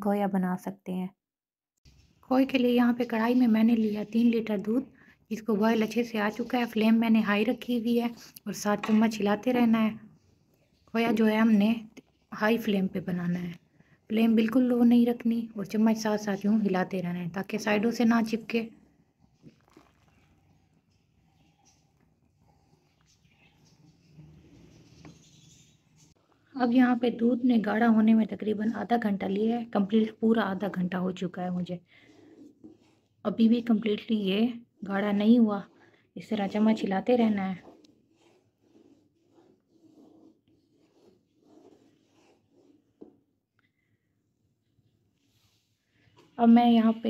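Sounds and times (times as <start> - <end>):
wooden spoon stirring boiling milk: 2.4 - 25.3, 25.9 - 43.6.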